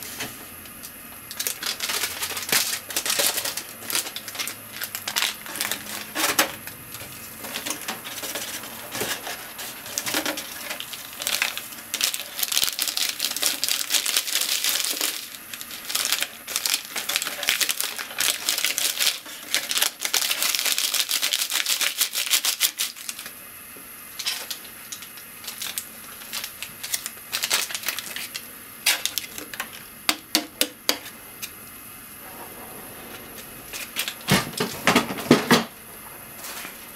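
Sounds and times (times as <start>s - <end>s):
plastic sachet crinkling: 0.8s - 23.3s, 24.2s - 29.9s.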